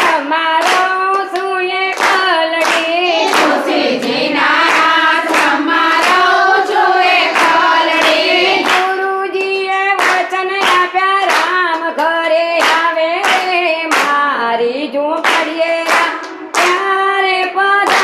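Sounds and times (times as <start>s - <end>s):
hand claps: 0.0s - 14.3s, 15.1s - 18.0s
women singing in unison: 0.0s - 18.0s.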